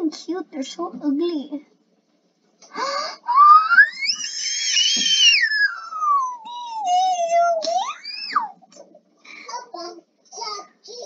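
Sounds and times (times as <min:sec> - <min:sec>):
child squealing: 0:03.3 - 0:08.5.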